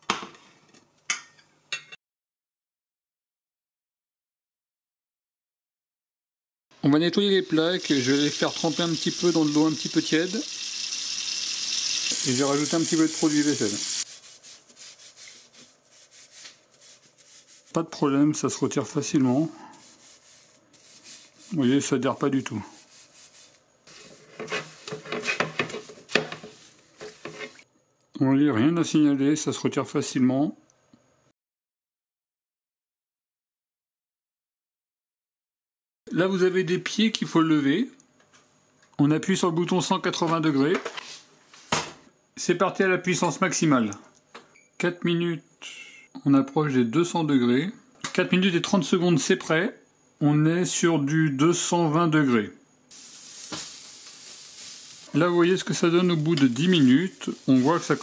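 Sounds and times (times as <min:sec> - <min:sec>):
sponge scrubbing a grill plate: 0:12.9 - 0:17.8, 0:19.3 - 0:21.8, 0:22.6 - 0:27.6, 0:52.9 - 0:58.0.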